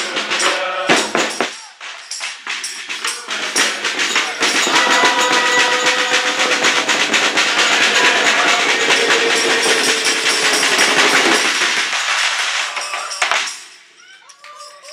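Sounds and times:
carolers singing: 0:00.0 - 0:01.9, 0:02.5 - 0:13.6
tambourine shaking: 0:00.0 - 0:14.9.

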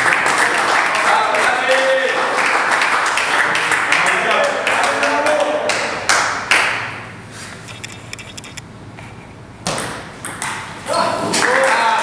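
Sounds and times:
people clapping: 0:00.0 - 0:07.0, 0:11.3 - 0:12.0.

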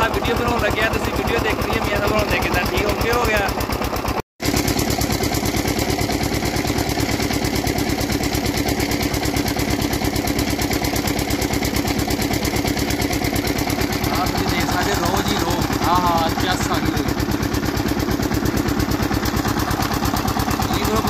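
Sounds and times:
diesel engine knocking: 0:00.0 - 0:21.0.

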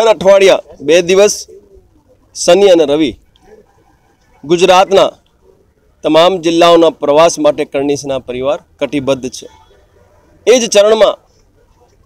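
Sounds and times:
man speaking: 0:00.0 - 0:03.7, 0:04.4 - 0:12.0.

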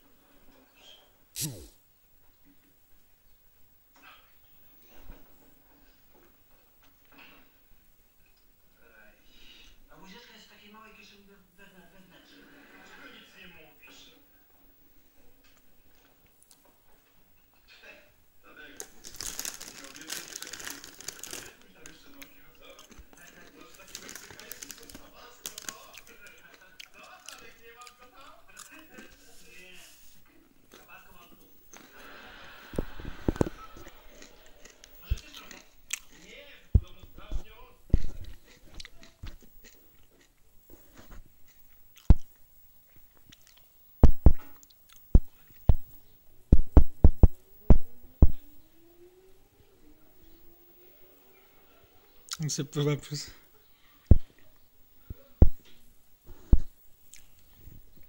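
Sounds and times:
crunchy chewing and biting: 0:01.4 - 0:01.8, 0:18.8 - 0:29.1, 0:33.1 - 0:42.4, 0:43.1 - 0:45.8
wrapping paper crinkling: 0:18.8 - 0:26.4.

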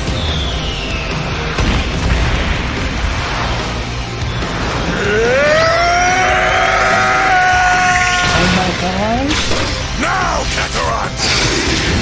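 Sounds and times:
soundtrack music: 0:00.0 - 0:12.0
long steady scream: 0:05.0 - 0:08.4.

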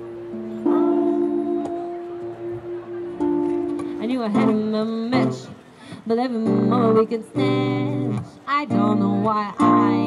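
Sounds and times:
guitar accompaniment: 0:00.0 - 0:10.0
woman singing into microphone: 0:03.8 - 0:10.0.

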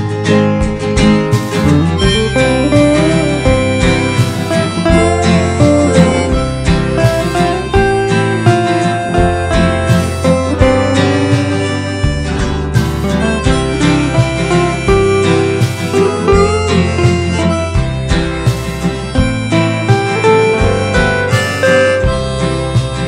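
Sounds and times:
harmonica melody: 0:00.0 - 0:23.0
strummed acoustic guitar: 0:00.0 - 0:23.0.

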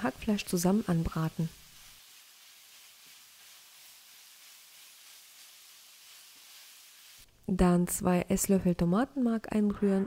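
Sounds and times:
meat and vegetables sizzling in pan: 0:00.0 - 0:07.3.

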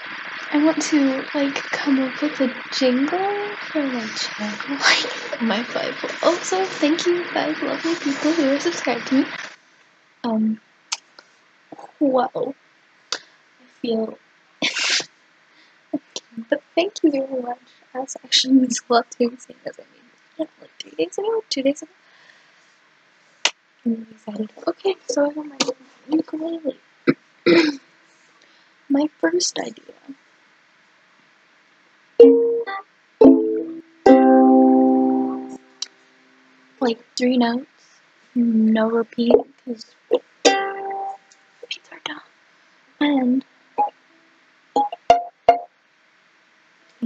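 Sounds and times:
person sneezing: 0:14.6 - 0:15.0, 0:27.5 - 0:27.8
ukulele plucked notes: 0:32.2 - 0:35.9, 0:39.3 - 0:39.5, 0:40.4 - 0:41.2, 0:44.8 - 0:45.7.

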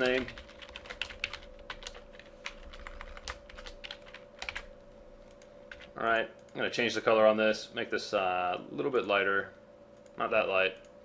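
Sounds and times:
keyboard and mouse clicking: 0:00.0 - 0:06.6
faint steady hum: 0:00.0 - 0:11.0.

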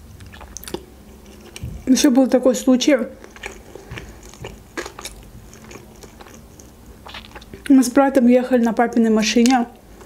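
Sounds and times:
wet chewing mouth clicks: 0:00.1 - 0:01.9, 0:03.2 - 0:07.8.

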